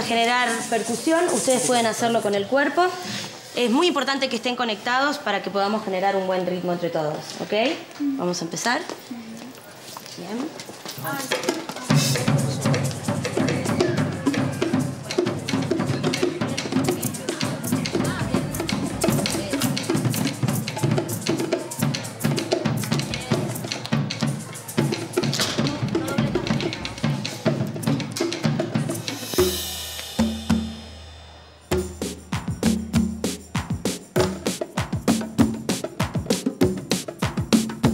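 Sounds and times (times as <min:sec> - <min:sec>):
group percussion jam: 0:10.8 - 0:37.9
music with steady beat: 0:11.8 - 0:37.9.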